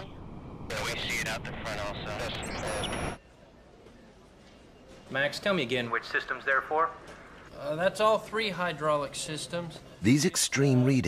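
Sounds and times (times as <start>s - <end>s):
noisy background: 0.0s - 11.0s.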